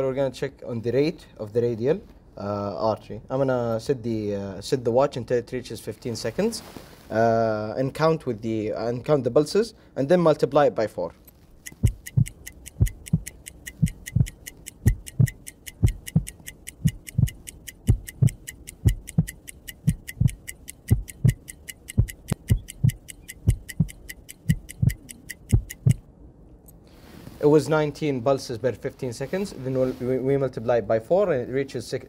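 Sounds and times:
clock ticking quickly: 11.6 - 26.1
heartbeat thumping: 11.7 - 26.1.

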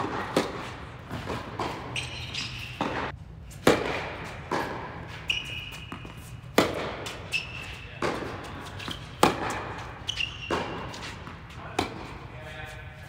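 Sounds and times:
tennis racket strikes: 0.0 - 12.1
sneakers squeaking on court: 0.0 - 12.2
tennis ball bounces: 0.0 - 12.2.

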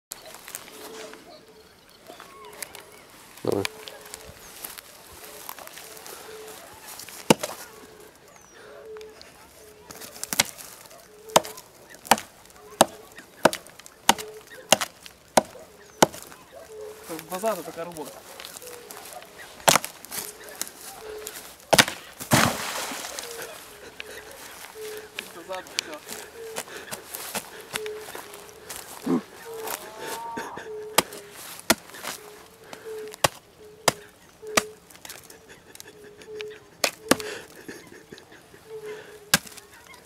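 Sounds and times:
stump crashing and splintering: 7.1 - 7.6, 11.3 - 16.3, 21.7 - 23.3
axe striking stump: 7.2 - 7.6, 10.2 - 10.6, 11.3 - 16.3, 19.6 - 19.9, 21.7 - 23.2, 33.2 - 34.7, 36.8 - 37.3, 39.3 - 39.6.

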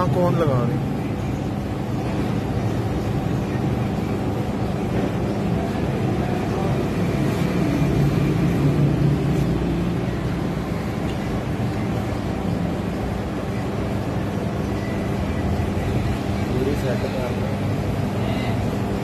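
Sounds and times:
ice cream machines humming: 0.0 - 19.0.

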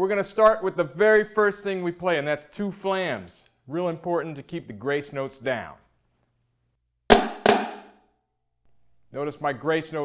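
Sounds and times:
snare drum flams: 7.1 - 8.0.

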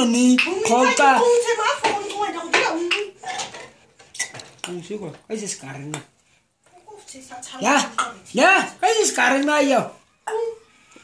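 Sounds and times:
dishes and cutlery clinking: 1.7 - 5.0.

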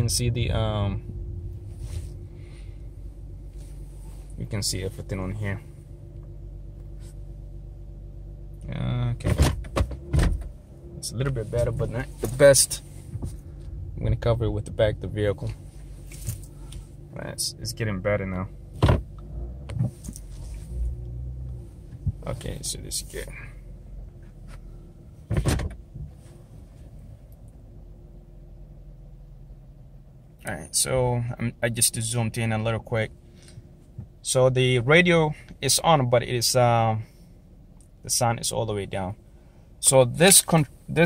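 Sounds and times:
car engine humming at low speed: 0.0 - 41.0.

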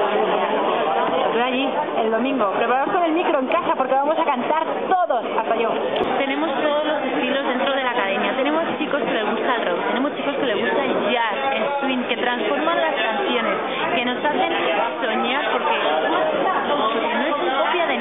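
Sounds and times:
overlapping chatter: 0.0 - 18.0.

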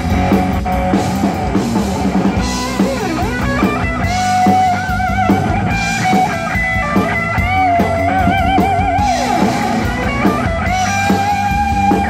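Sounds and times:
bass guitar: 0.0 - 12.0
drum kit beat: 0.0 - 12.0
electric lead guitar melody: 0.0 - 12.0.

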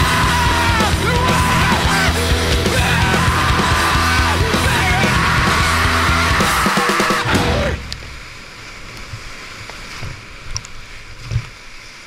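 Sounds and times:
loud rock music: 0.0 - 7.9
whitewater rapids churning: 0.0 - 12.0.

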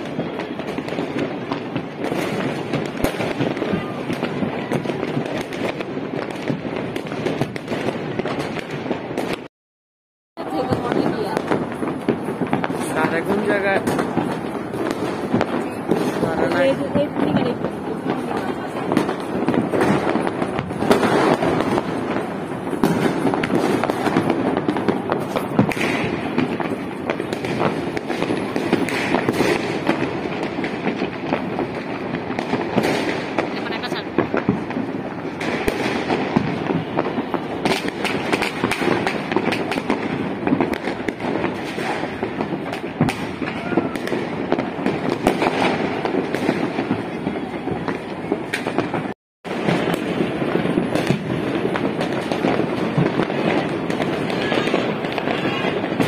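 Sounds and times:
fireworks crackling and banging: 0.0 - 9.5, 10.4 - 56.0.

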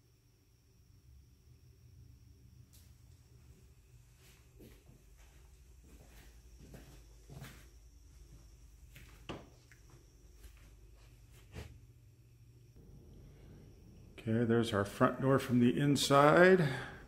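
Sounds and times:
faint soft footsteps: 4.0 - 11.9.

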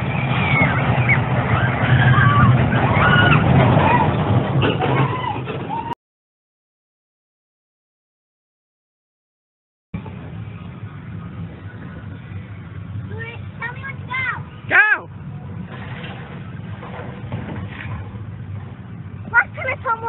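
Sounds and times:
steady low rumble: 0.0 - 4.8, 10.0 - 20.0.

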